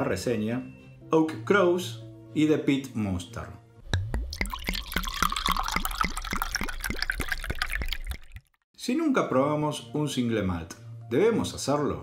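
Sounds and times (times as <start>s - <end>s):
liquid glugging blips: 3.8s - 8.6s.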